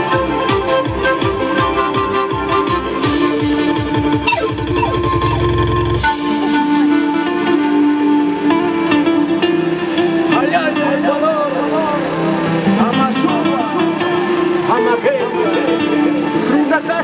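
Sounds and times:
panpipes melody: 0.0 - 10.3
backing track: 0.0 - 17.0.

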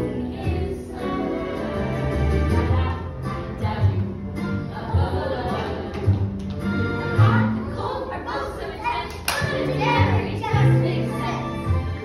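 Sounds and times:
hand clapping: 9.1 - 9.7.

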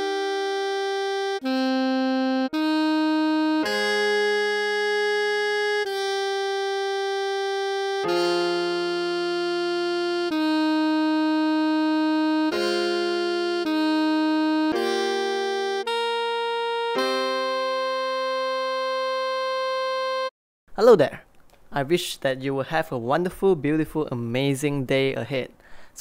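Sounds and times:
synthesized saxophone note: 0.0 - 20.3.

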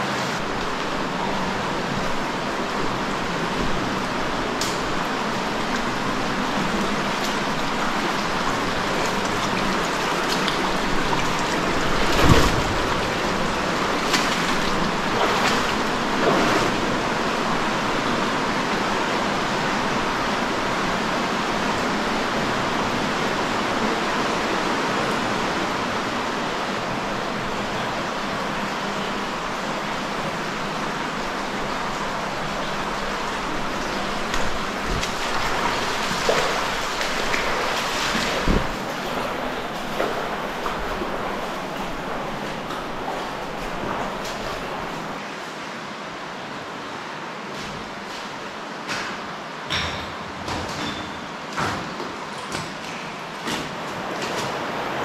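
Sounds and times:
river rushing over rock: 0.0 - 45.2
water splashes: 0.0 - 45.2.

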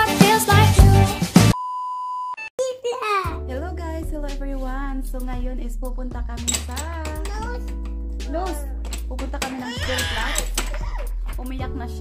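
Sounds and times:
upbeat intro music: 0.0 - 1.6
person speaking: 6.4 - 11.5.

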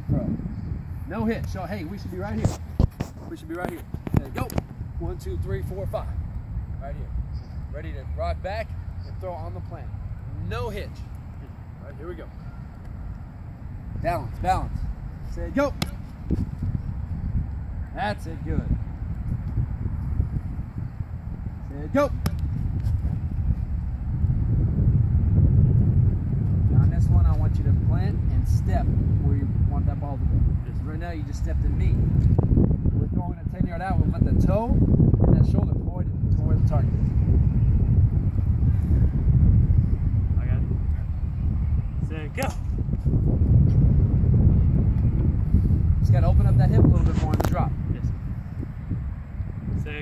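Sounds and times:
wind rumbling on microphone: 0.0 - 50.0.

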